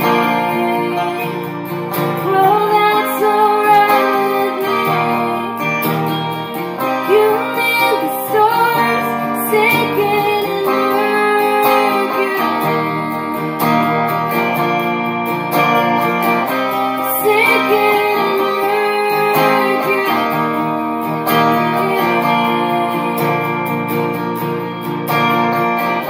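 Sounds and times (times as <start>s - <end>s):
woman singing: 0.0s - 14.9s, 16.5s - 24.3s
electric guitar chords: 0.0s - 26.0s.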